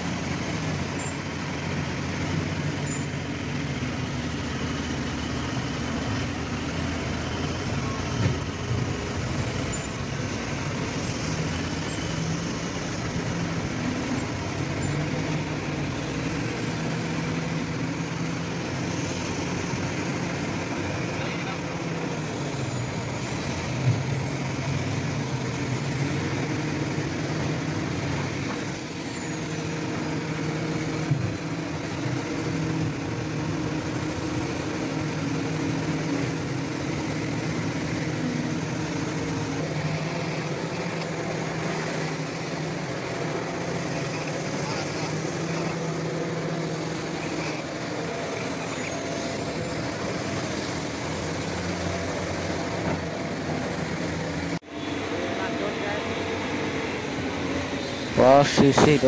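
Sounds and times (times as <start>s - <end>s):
heavy diesel machinery running: 0.0s - 59.0s.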